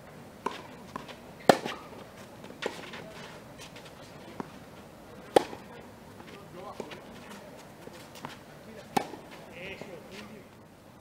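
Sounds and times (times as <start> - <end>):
tennis ball hit by racket: 0.4 - 4.5, 5.2 - 9.8
tennis ball bouncing: 0.4 - 10.0.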